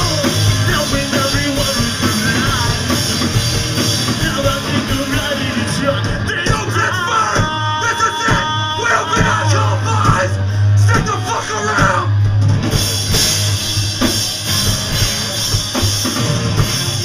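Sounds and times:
singer's voice: 0:00.0 - 0:12.4
pop-punk band playing live: 0:00.0 - 0:17.0.

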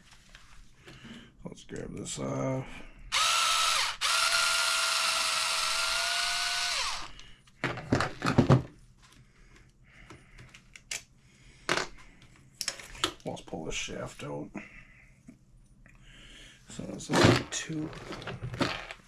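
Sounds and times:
electric screwdriver motor whining: 0:03.1 - 0:07.1.

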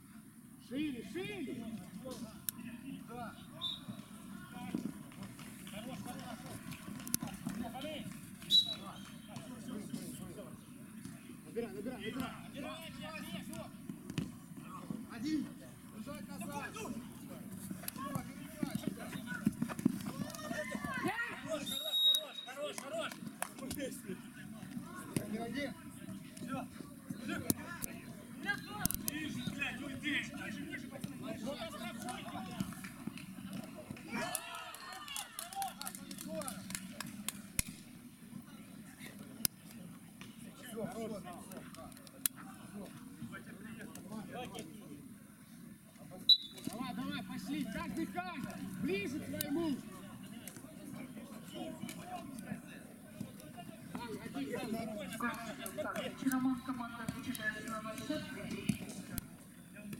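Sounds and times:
players calling and shouting: 0:00.0 - 0:59.9.

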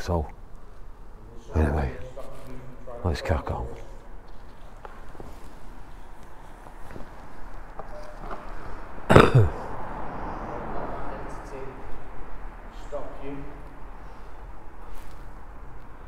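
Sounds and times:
person grunting: 0:09.1 - 0:09.8.

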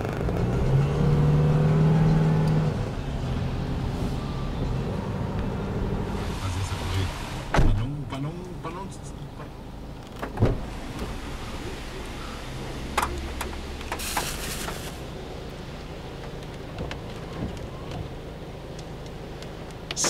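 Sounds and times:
car engine and road rumble: 0:00.0 - 0:20.0
rain and wet tyres hissing: 0:06.0 - 0:07.6, 0:10.6 - 0:16.1.

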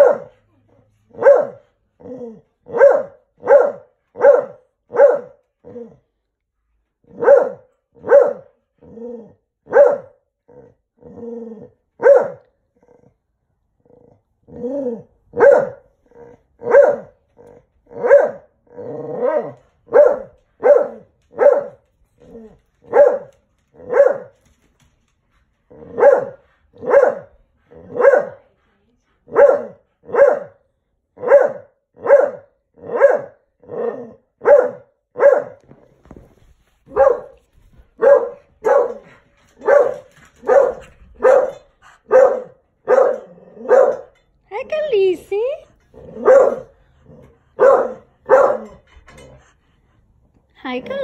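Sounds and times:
dog barking: 0:00.0 - 0:00.4, 0:01.2 - 0:01.6, 0:02.7 - 0:05.4, 0:07.1 - 0:08.6, 0:09.7 - 0:10.2, 0:12.0 - 0:12.5, 0:15.3 - 0:15.9, 0:16.6 - 0:17.2, 0:18.0 - 0:18.5, 0:19.2 - 0:21.8, 0:22.9 - 0:24.4, 0:25.9 - 0:28.4, 0:29.3 - 0:30.6, 0:31.2 - 0:33.4, 0:34.4 - 0:35.6, 0:36.9 - 0:37.4, 0:38.0 - 0:44.2, 0:46.1 - 0:46.8, 0:47.6 - 0:48.8.

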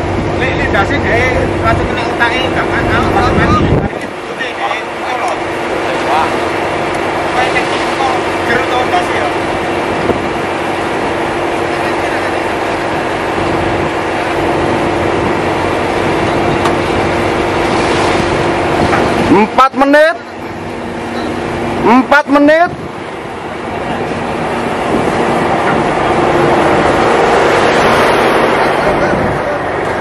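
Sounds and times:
boat engine humming: 0:00.0 - 0:30.0
heavy low rumble: 0:00.0 - 0:30.0.

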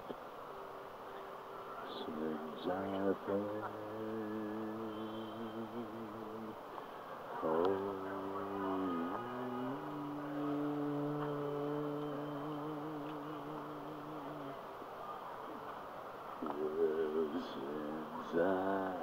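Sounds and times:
person humming held notes: 0:02.0 - 0:14.7.

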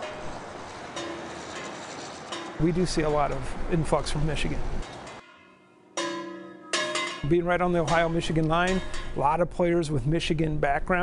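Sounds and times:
bell-like struck notes: 0:05.1 - 0:09.2.

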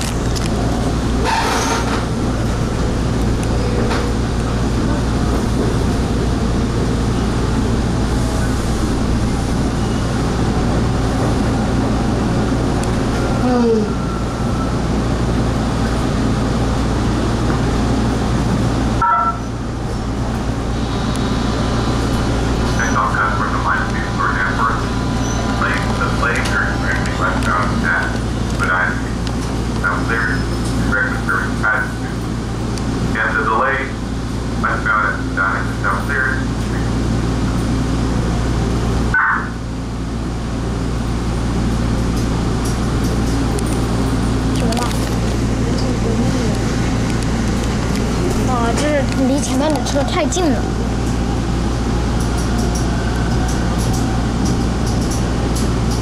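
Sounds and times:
passengers talking: 0:00.0 - 0:56.0
subway car rumbling in tunnel: 0:00.0 - 0:56.0.

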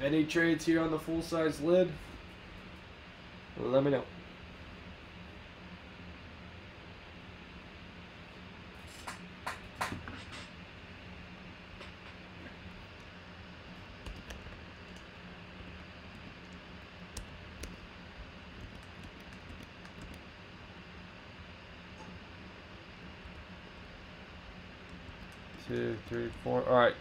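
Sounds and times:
steady low hum: 0:00.0 - 0:27.0
computer keyboard typing: 0:14.0 - 0:15.1, 0:18.5 - 0:20.2, 0:25.1 - 0:26.5.

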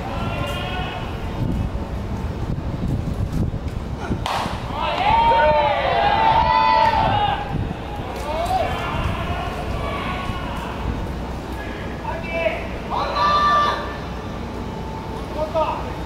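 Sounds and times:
players shouting: 0:00.0 - 0:01.4, 0:04.2 - 0:14.1
ballpark background noise: 0:00.0 - 0:16.0.

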